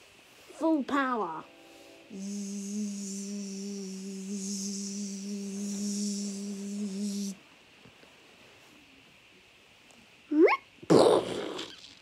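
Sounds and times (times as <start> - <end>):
low electronic hum: 1.0 - 7.8
hiss: 2.1 - 7.4.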